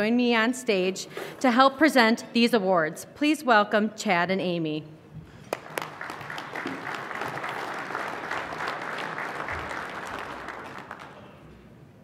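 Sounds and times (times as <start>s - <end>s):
audience applauding: 5.4s - 11.5s.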